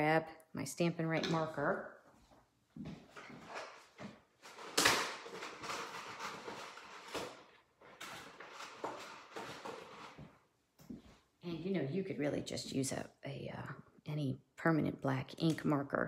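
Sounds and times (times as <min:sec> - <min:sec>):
rustling of handled objects: 0:02.1 - 0:11.3.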